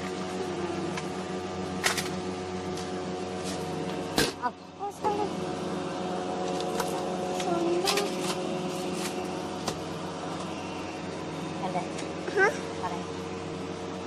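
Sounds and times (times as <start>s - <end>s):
refrigerated display cases humming: 0.0s - 14.0s.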